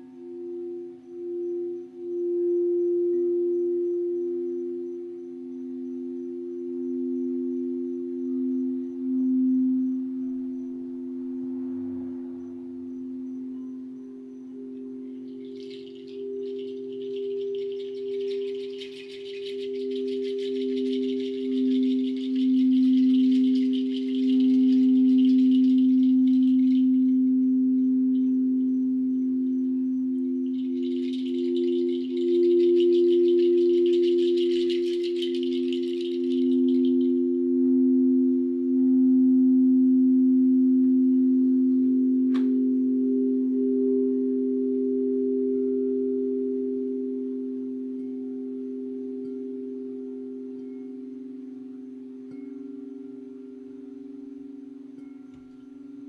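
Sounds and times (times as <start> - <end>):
crystal singing bowls tones: 0.0 - 56.0
high jingling shake: 15.1 - 27.1, 30.4 - 37.2.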